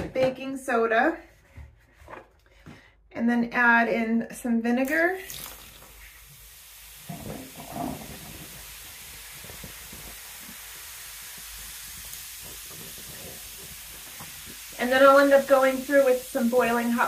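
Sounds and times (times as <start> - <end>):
liquid pouring splash: 4.8 - 17.0
vinegar and baking soda fizzing: 4.8 - 17.0.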